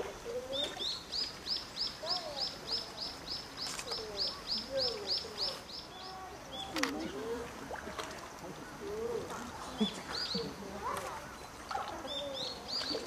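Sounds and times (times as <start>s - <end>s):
faint human voices: 2.0s - 13.0s.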